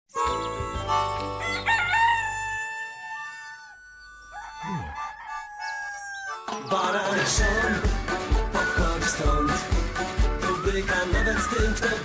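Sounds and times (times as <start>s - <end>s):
background music: 0.1s - 2.7s, 4.0s - 12.0s
rooster crowing: 1.4s - 6.5s.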